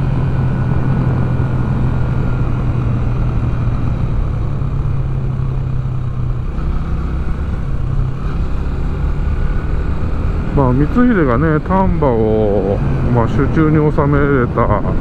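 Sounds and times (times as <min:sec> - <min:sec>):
motorcycle engine running: 0:00.0 - 0:13.5.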